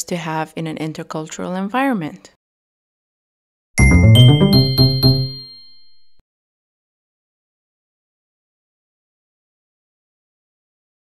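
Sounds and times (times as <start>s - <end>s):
chime-like jingle notes: 3.8s - 6.1s.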